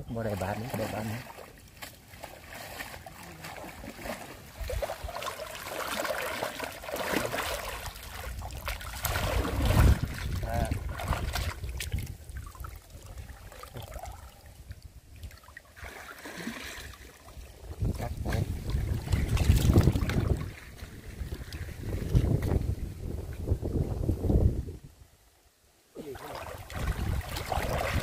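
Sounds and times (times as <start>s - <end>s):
river water splashing: 0.1s - 22.6s, 26.0s - 28.0s
wind rumble on microphone: 4.4s - 5.2s, 8.0s - 15.3s, 17.4s - 25.1s, 26.5s - 28.0s.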